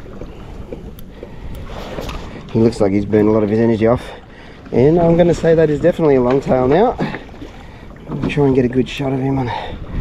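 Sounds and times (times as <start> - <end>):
water washing against hull: 0.0 - 10.0
wind buffeting microphone: 0.0 - 10.0.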